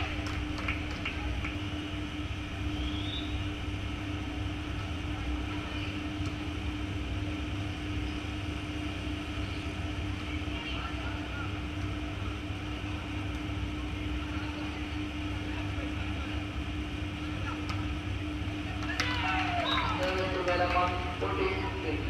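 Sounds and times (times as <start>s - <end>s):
constant hum: 0.0s - 22.0s
distant shouts of players: 18.8s - 20.4s.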